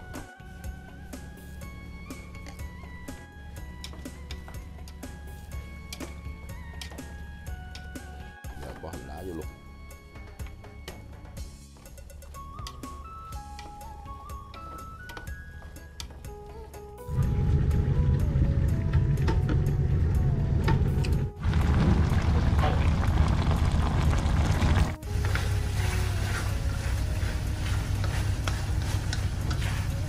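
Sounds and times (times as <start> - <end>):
background music: 0.0 - 30.0
low rumble: 17.1 - 30.0
meat sizzling in a pan: 21.5 - 30.0.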